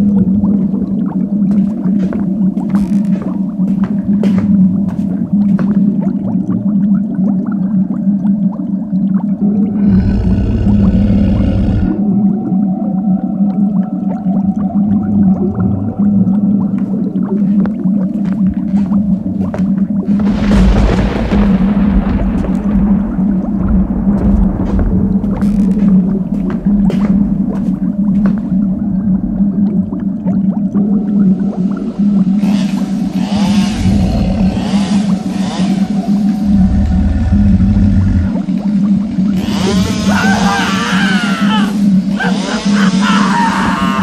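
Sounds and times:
clicks and creaks: 2.7s - 3.4s, 25.3s - 26.0s
steady low drone: 7.9s - 40.2s
hiss burst with low rumble: 20.2s - 29.5s, 31.2s - 38.5s.

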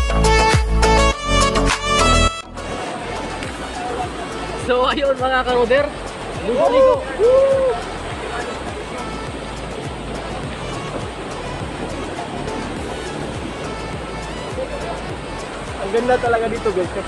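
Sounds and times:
background music: 0.0s - 17.0s
small waterfall rushing: 2.7s - 17.0s.

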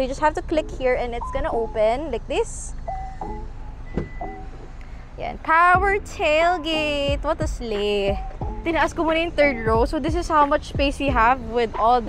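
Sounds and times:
short warning beeps: 2.9s - 4.5s
tailgate latch click: 3.2s - 4.8s.

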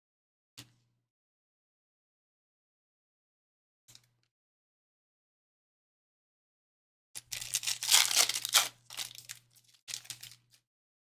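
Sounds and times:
foil wrapper torn and crinkled: 7.2s - 10.6s.

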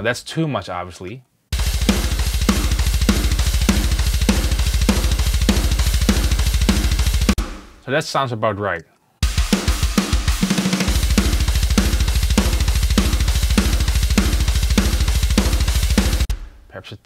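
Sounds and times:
double kick drum run: 1.6s - 7.8s, 9.2s - 16.6s
cymbals: 1.6s - 7.9s, 9.2s - 16.7s
snare hits: 1.6s - 7.9s, 9.2s - 16.7s.

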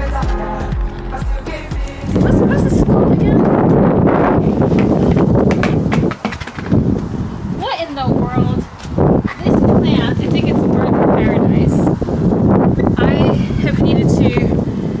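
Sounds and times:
wind buffeting microphone: 1.9s - 15.0s
woman's voice: 2.1s - 3.8s, 7.6s - 12.0s, 12.9s - 14.6s.

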